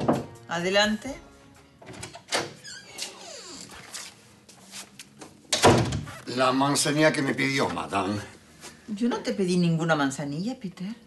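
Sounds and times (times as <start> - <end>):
door hinge creaking: 2.0 - 3.7.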